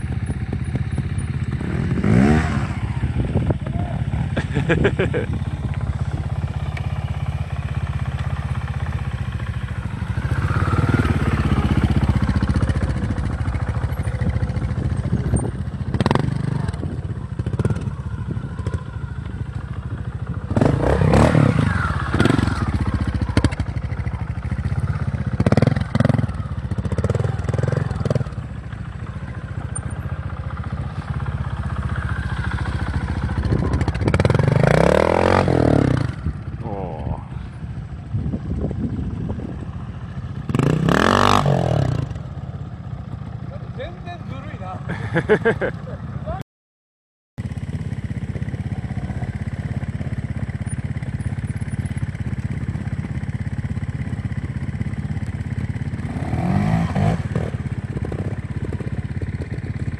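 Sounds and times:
motorcycle engine idling and revving: 0.0 - 46.4, 47.4 - 59.9.

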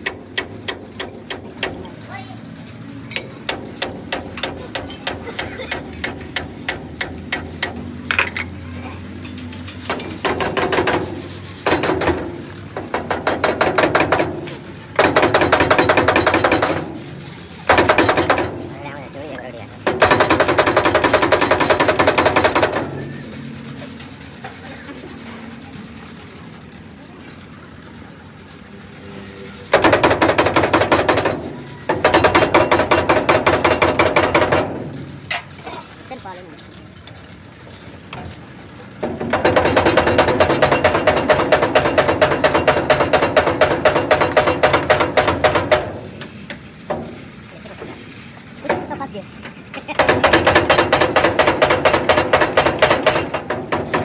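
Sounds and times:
fast metallic clicking and rattling: 0.0 - 54.0.

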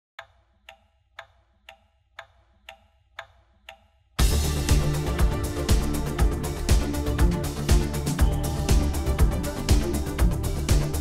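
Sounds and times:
clock ticking: 0.2 - 11.0.

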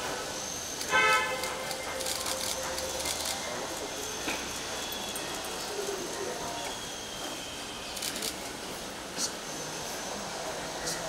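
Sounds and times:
loud horn toot: 0.9 - 1.6
crowd noise: 1.4 - 11.0.

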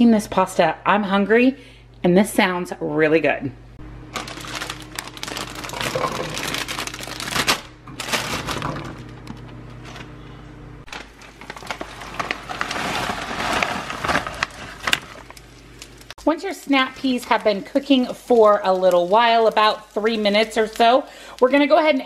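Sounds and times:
plastic bag crinkling: 4.1 - 10.1, 10.8 - 16.2.

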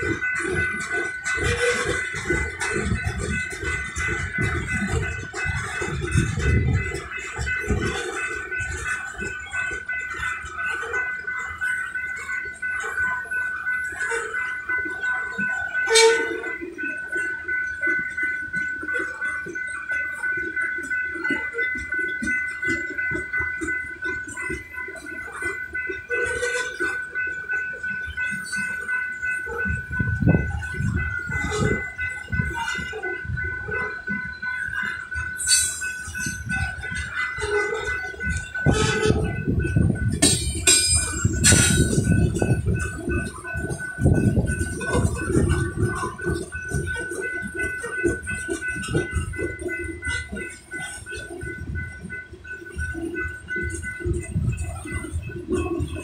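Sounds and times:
freight train wheels clattering: 0.0 - 56.0.

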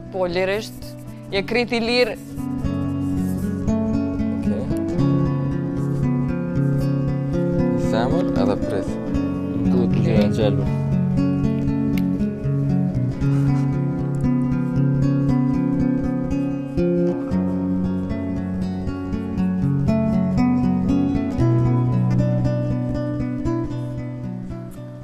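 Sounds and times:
acoustic guitar music: 0.0 - 25.0.

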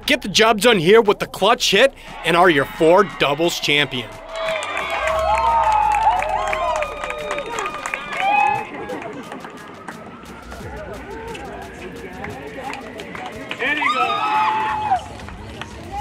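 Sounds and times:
high-pitched squeals and cheers: 2.1 - 11.8, 13.4 - 16.0
chatter: 2.1 - 16.0.

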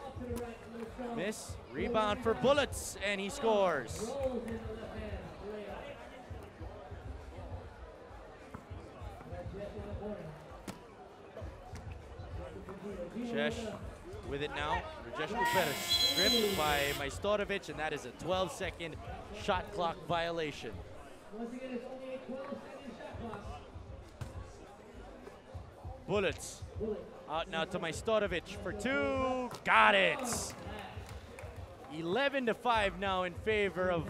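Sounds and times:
voices talking: 15.2 - 17.2.

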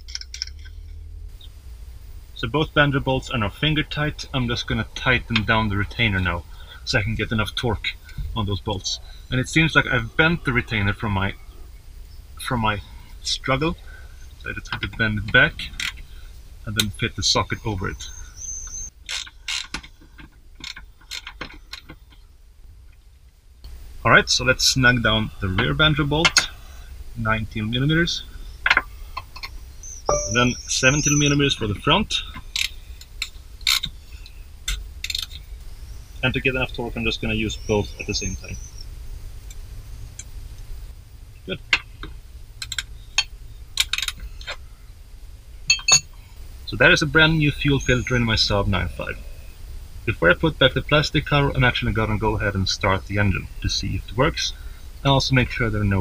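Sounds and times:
metallic clicks of wrenches: 0.0 - 1.0, 15.7 - 16.0, 19.0 - 22.2, 32.3 - 33.9, 42.6 - 44.6
low steady rumble: 0.0 - 56.0.

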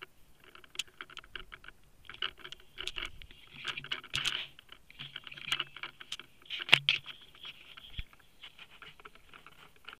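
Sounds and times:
dry hay rustling and crackling: 0.6 - 10.0.

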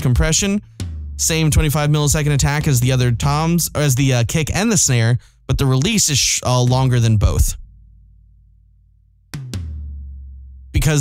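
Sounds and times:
tom-tom drum hits: 0.7 - 3.8, 9.4 - 10.2.

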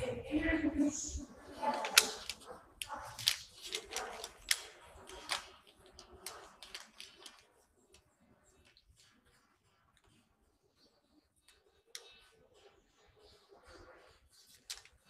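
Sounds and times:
paper bag crinkling: 1.6 - 7.5.

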